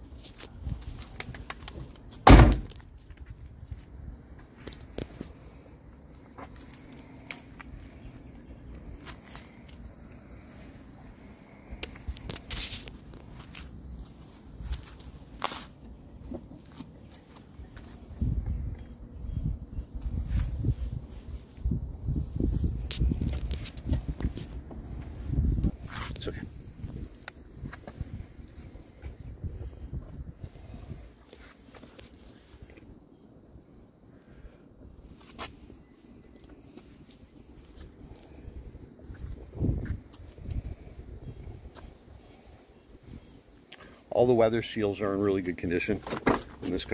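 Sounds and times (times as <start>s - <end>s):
wind buffeting microphone: 17.7s - 31.2s, 37.5s - 43.5s.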